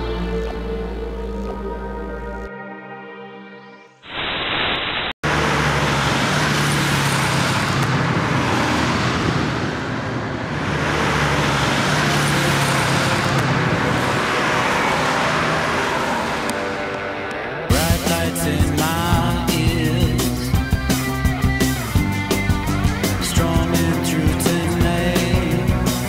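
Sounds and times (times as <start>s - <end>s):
road traffic passing: 5.2s - 26.0s.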